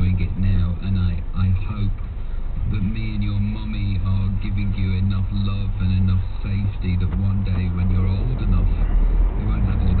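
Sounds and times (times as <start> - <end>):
car engine and tyre hum: 0.0 - 10.0.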